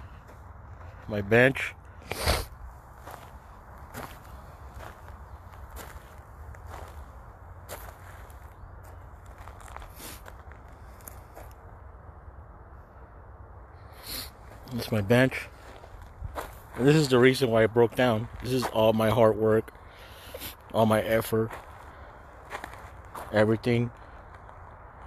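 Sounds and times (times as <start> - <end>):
footsteps crunching over debris: 2.9 - 11.6, 14.5 - 19.1, 21.4 - 24.7.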